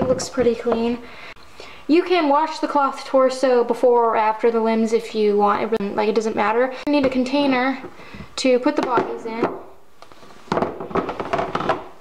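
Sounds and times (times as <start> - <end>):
doll limbs knocking plastic tub: 8.8 - 9.7, 10.5 - 12.0.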